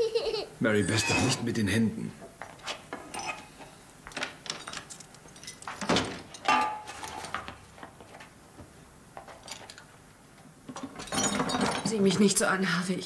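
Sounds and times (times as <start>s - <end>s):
dishes knocking and clinking: 4.1s - 7.5s, 10.7s - 12.2s.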